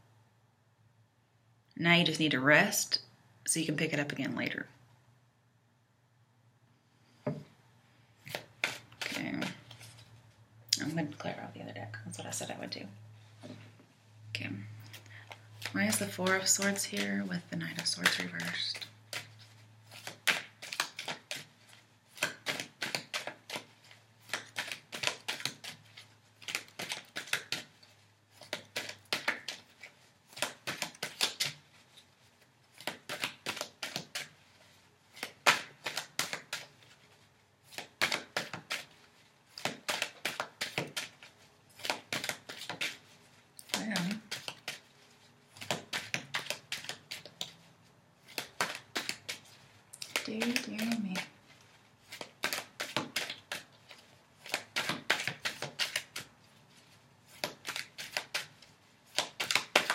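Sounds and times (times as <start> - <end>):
cards being shuffled: 8.2 - 10.2, 14.8 - 59.9.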